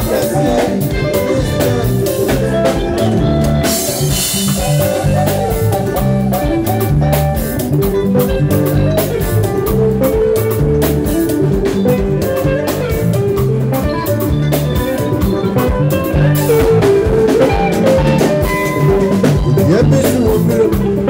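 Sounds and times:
bass line: 0:00.0 - 0:21.0
drum kit: 0:00.0 - 0:21.0
electric guitar lines: 0:00.0 - 0:21.0.

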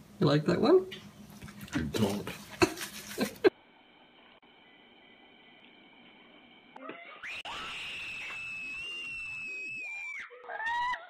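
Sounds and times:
girls screaming: 0:06.8 - 0:11.0.

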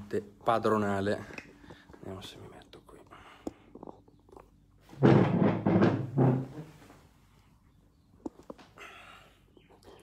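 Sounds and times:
chair scraping across hard floor: 0:04.9 - 0:07.0.

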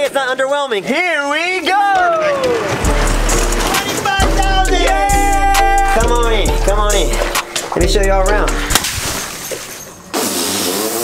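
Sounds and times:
water balloons squishing and rubbing: 0:02.3 - 0:05.0, 0:05.7 - 0:11.0.

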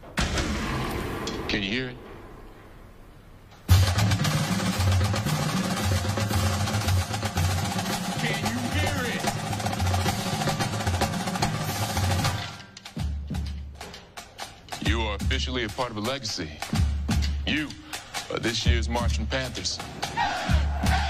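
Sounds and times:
snare and bass drums playing: 0:03.7 - 0:21.0.

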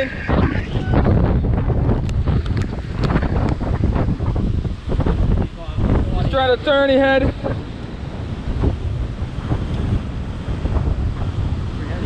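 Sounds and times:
heavy surf breaking on rocks: 0:00.0 - 0:12.0
wind buffeting microphone: 0:00.0 - 0:12.0.

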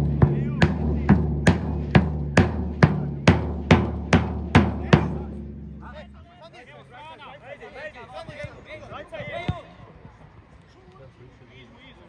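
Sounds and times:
bass drum beating: 0:00.0 - 0:06.2.

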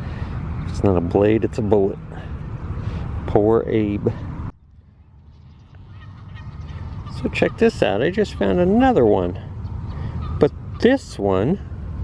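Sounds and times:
low outdoor rumble: 0:00.0 - 0:12.0
birds honking: 0:05.3 - 0:11.2.

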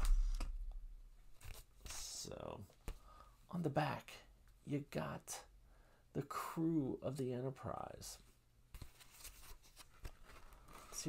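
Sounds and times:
cardboard record sleeve rustling: 0:00.0 - 0:01.8, 0:08.8 - 0:11.0.

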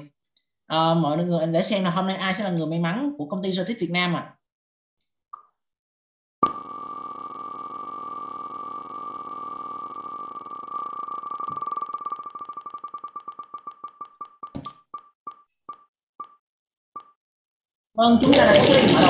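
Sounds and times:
electronic ticks slowing: 0:06.4 - 0:16.4, 0:17.0 - 0:17.2.

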